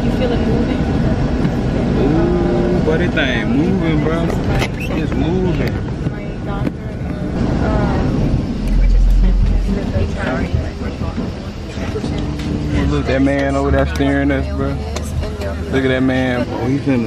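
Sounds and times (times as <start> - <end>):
airliner engines humming: 0.0 - 17.0
low rumble: 6.6 - 13.2.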